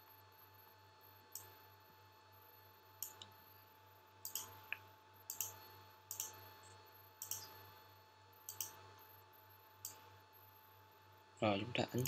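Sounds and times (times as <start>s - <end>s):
faint electrical hum: 0.0s - 12.0s
computer mouse clicks: 1.3s - 1.6s, 3.0s - 3.4s, 4.2s - 7.6s, 8.5s - 8.8s.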